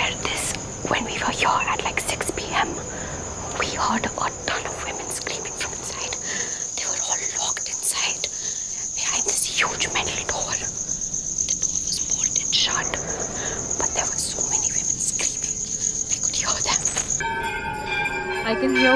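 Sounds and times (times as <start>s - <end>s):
crickets chirping: 0.0s - 18.6s.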